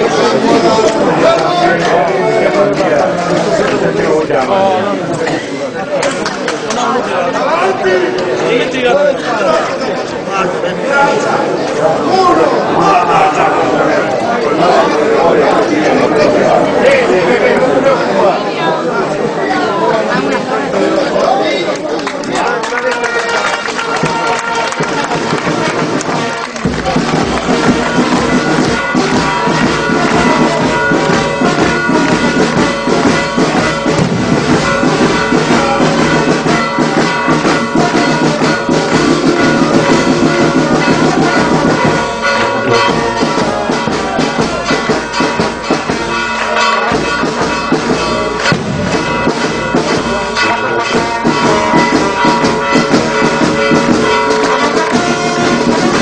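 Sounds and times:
percussion beats: 0:00.0 - 0:18.7, 0:19.9 - 0:56.0
trumpets and trombones: 0:23.1 - 0:56.0.

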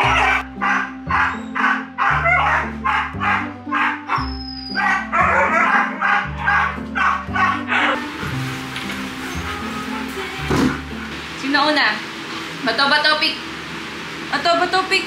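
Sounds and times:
dogs barking and yipping: 0:00.0 - 0:08.1
background music with bass: 0:00.0 - 0:11.6.

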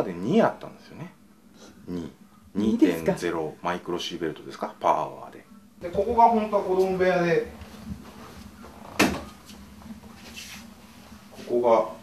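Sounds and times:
footsteps: 0:05.9 - 0:11.6.

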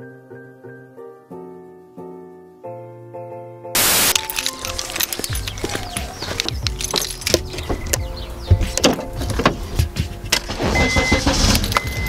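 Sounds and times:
car keys jangling: 0:04.1 - 0:09.6, 0:11.4 - 0:12.0
short high electronic beep: 0:10.7 - 0:12.0.

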